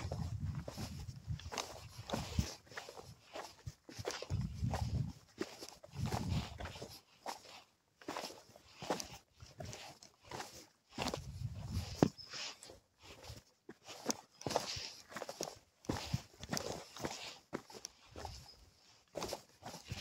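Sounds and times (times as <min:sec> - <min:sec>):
footsteps crunching on gravel: 0:00.0 - 0:20.0.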